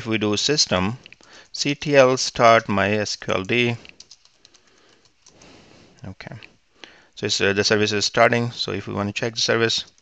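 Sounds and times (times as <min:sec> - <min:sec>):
computer keys clicking: 0:03.2 - 0:05.5, 0:09.7 - 0:10.0.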